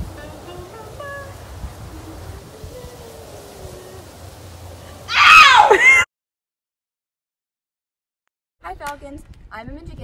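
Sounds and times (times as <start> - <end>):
low steady rumble: 0.0 - 5.1.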